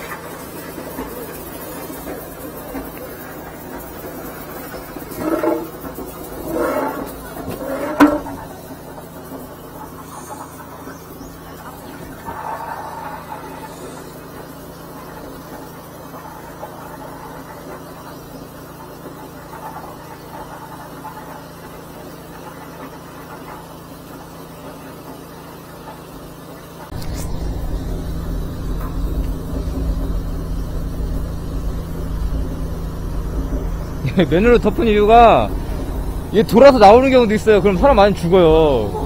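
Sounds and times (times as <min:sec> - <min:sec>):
sewer jetter running: 0:00.0 - 0:10.7, 0:26.4 - 0:39.0.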